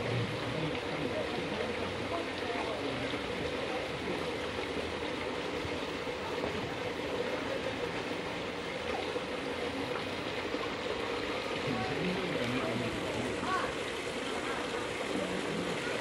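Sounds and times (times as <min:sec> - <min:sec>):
running water rushing: 0:00.0 - 0:16.0.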